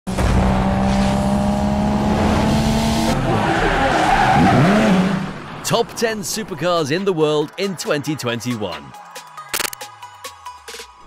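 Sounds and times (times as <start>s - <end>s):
car engine: 0.1s - 6.6s.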